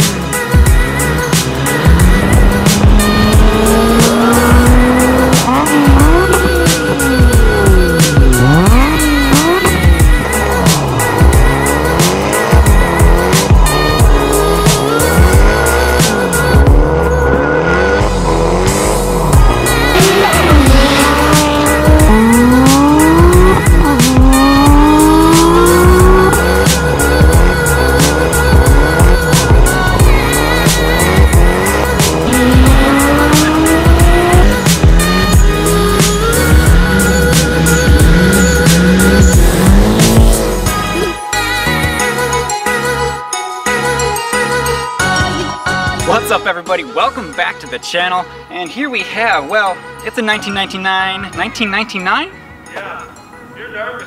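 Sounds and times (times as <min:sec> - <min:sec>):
car engine revving hard: 0:00.0 - 0:41.1
music with steady beat: 0:00.0 - 0:46.9.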